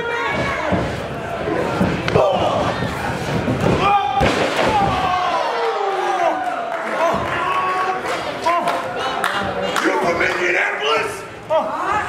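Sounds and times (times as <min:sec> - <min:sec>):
people shouting: 0:01.5 - 0:08.6.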